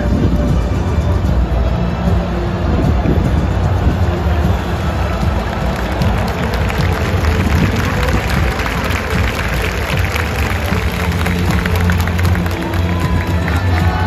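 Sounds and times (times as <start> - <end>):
bass-heavy music over loudspeakers: 0.0 - 14.0
large crowd noise: 0.0 - 14.0.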